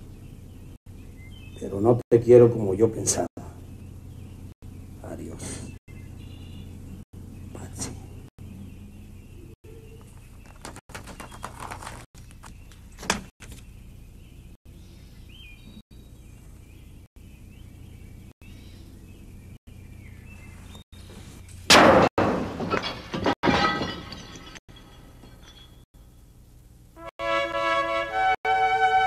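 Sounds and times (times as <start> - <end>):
steady low hum: 0.0 - 10.5, 12.2 - 22.0, 23.5 - 27.1
sharp knocks: 21.7 - 24.0
ringing tinkling tones: 24.1 - 25.9.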